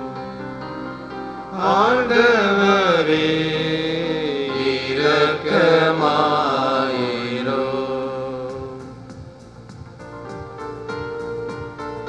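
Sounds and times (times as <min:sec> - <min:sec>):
electronic keyboard accompaniment: 0:00.0 - 0:12.0
voices singing a slow hymn: 0:01.5 - 0:09.7.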